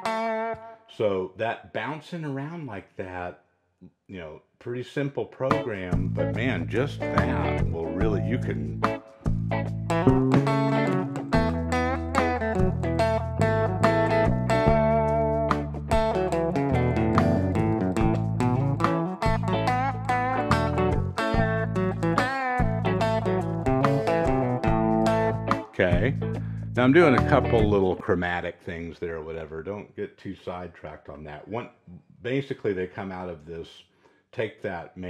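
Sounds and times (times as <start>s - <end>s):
electric guitar lick: 0.0s - 0.8s, 5.6s - 28.0s
sustained low notes: 5.7s - 8.8s, 23.7s - 28.0s.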